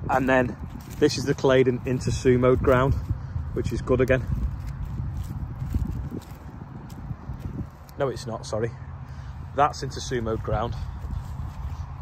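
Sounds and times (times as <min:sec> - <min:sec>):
footsteps on soil and straw: 0:00.0 - 0:08.6, 0:09.4 - 0:12.0.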